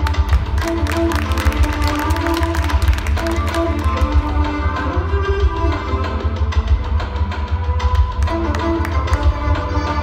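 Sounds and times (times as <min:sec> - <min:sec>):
music over loudspeakers: 0:00.0 - 0:10.0.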